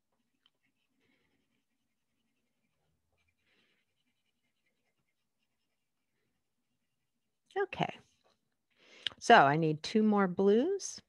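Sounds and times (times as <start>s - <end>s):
pencil scratching on paper: 0.0s - 7.4s.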